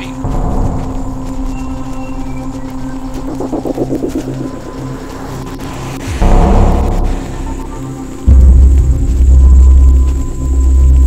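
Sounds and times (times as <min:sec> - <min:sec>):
dark ambient low drone: 0:00.0 - 0:11.0
loud low surge: 0:02.6 - 0:10.3.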